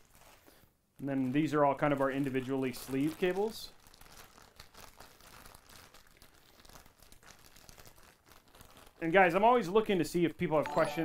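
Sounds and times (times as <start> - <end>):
plastic bag crinkling: 0.0 - 9.5.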